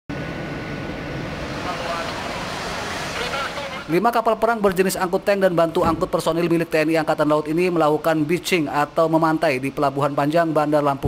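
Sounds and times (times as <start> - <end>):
outdoor rumble: 0.1 - 4.2.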